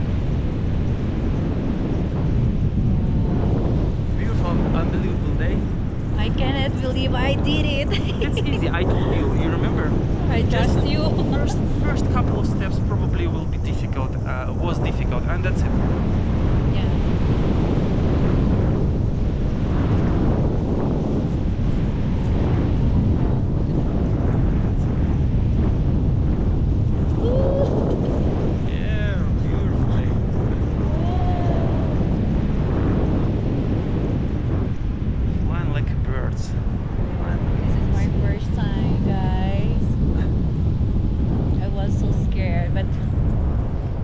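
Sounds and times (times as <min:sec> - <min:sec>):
wind buffeting microphone: 0:00.0 - 0:44.0
faint voices: 0:04.2 - 0:15.7, 0:27.1 - 0:32.2, 0:35.3 - 0:40.3.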